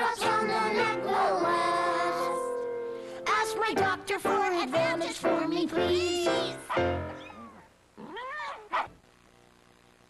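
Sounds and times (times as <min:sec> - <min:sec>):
cat meowing: 0:07.1 - 0:08.9.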